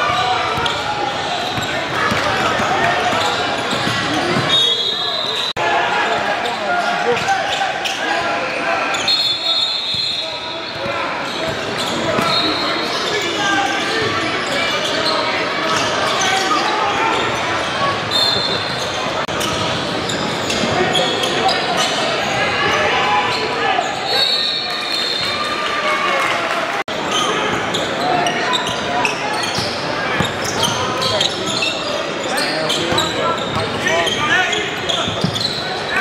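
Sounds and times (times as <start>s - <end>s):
sneakers squeaking: 0.0s - 5.6s, 6.2s - 25.6s, 27.0s - 36.0s
indistinct shouts and chatter: 0.0s - 36.0s.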